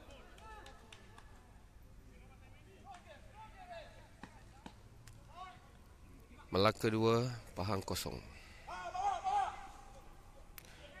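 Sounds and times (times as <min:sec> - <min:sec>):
faint open-air background: 0:00.0 - 0:11.0.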